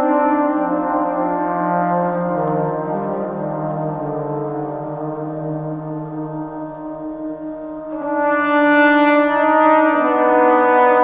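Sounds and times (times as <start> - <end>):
trombone long low note: 0.0 - 11.0.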